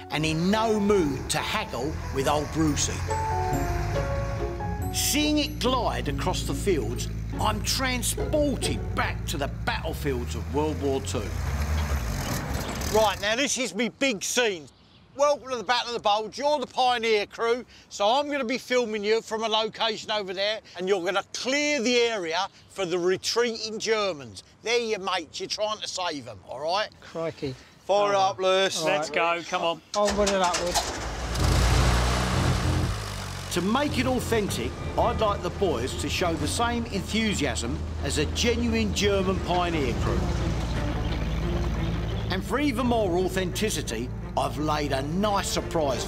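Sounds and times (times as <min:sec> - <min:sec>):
vehicle engine rumbling: 0:00.0 - 0:13.4, 0:30.1 - 0:46.0
half-track engine running: 0:30.7 - 0:44.3.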